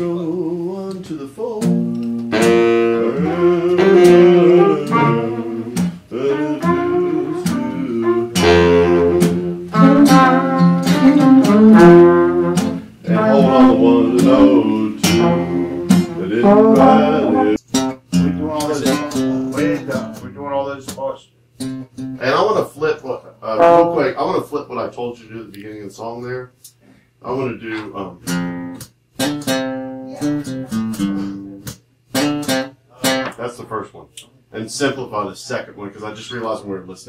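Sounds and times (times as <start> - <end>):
acoustic guitar strumming: 1.6 - 20.4, 21.6 - 22.4, 23.5 - 24.4, 28.2 - 33.4
horn section playing: 2.3 - 17.6, 23.6 - 24.2.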